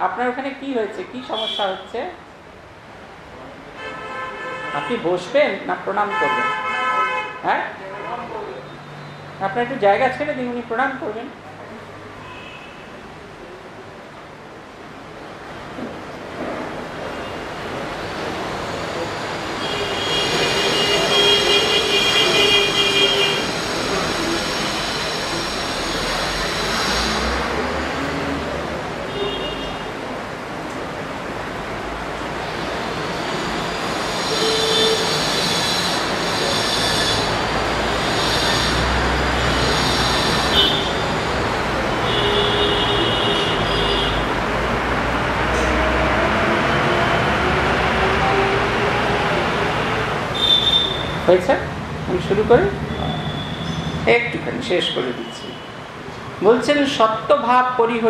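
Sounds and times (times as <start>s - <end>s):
train rumbling past: 15.5s - 29.1s, 29.8s - 50.4s
train wheels squealing: 23.0s - 27.4s, 33.0s - 41.4s, 50.4s - 51.2s, 52.9s - 54.0s.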